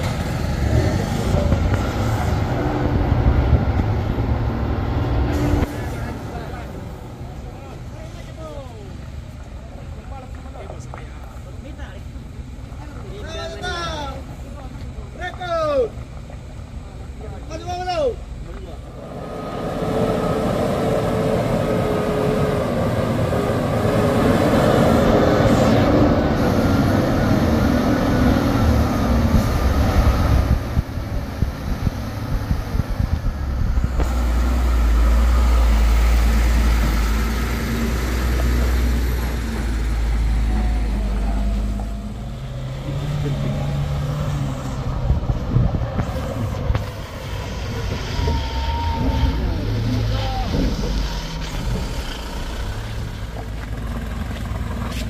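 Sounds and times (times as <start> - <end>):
truck passing close by: 0.0 - 8.4, 18.8 - 55.0
truck engines labouring uphill: 0.0 - 55.0.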